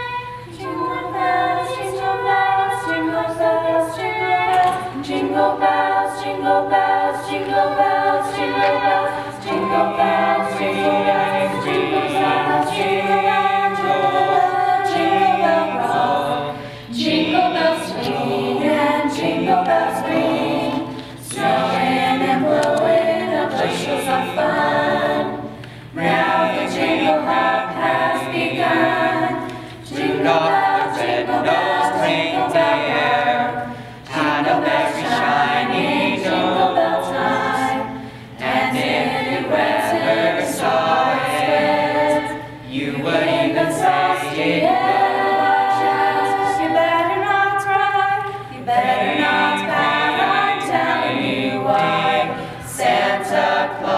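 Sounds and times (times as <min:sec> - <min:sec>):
choir singing in harmony: 0:00.0 - 0:53.9.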